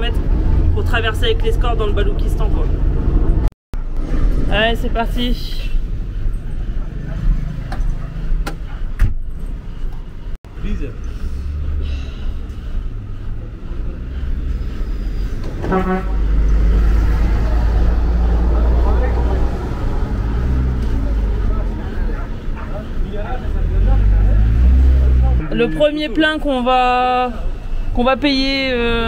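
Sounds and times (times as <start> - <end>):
vehicle horn toot: 15.6 - 16.3.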